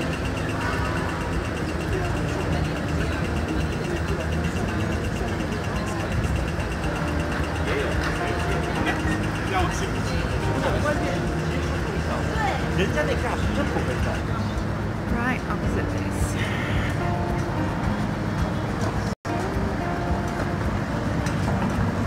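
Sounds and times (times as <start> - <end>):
heavy vehicle engine idling: 0.0 - 15.1
street traffic: 0.0 - 22.0
voices of passers-by: 0.0 - 22.0.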